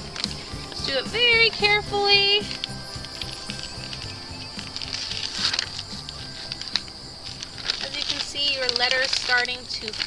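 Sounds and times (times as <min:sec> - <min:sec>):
background music: 0:00.0 - 0:09.6.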